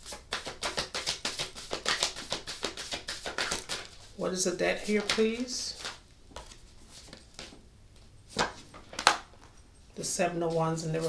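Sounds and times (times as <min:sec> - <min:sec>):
cards snapping and tapping: 0:00.3 - 0:03.9
soft card handling: 0:04.8 - 0:09.6.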